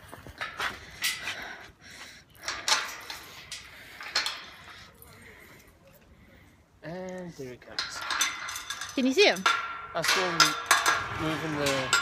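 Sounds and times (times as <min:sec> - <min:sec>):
keys and chain clinking on gate: 0:07.7 - 0:11.1.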